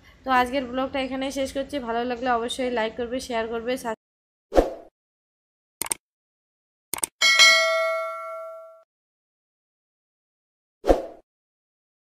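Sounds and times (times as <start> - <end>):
quick double click: 5.8 - 6.0, 6.9 - 7.1
notification bell ding: 7.2 - 8.8.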